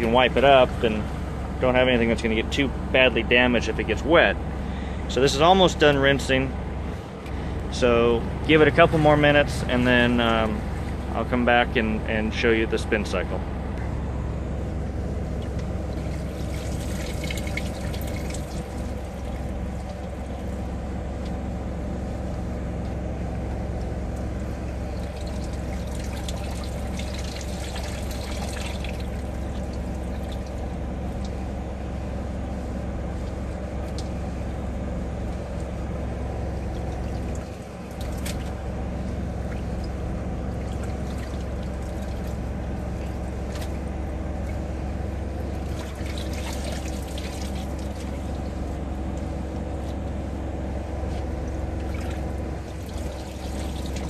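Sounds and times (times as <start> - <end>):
low machine hum: 0.0 - 54.0
water trickling and pouring: 16.0 - 20.1, 24.8 - 30.6, 40.6 - 42.4, 45.6 - 48.5, 51.8 - 54.0
wet laundry handled: 23.8 - 31.5, 35.3 - 50.2, 51.0 - 54.0.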